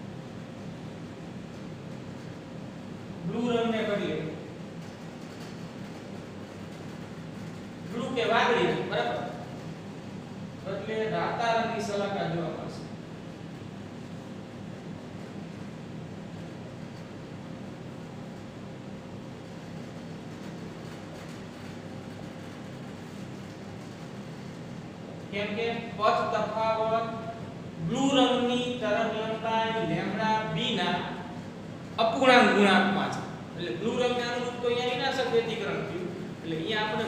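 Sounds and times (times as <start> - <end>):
room noise hum and hiss: 0.0 - 37.0.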